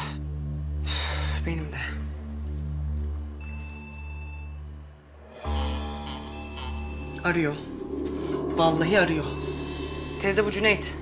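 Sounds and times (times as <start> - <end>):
mobile phone ringtone: 3.4 - 4.7, 5.7 - 7.6
low sustained drone: 5.0 - 11.0.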